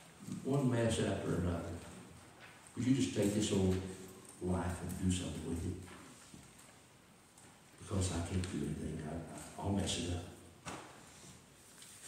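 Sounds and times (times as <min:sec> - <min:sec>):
man speaking: 0:00.2 - 0:02.1, 0:02.7 - 0:06.0, 0:07.8 - 0:10.5.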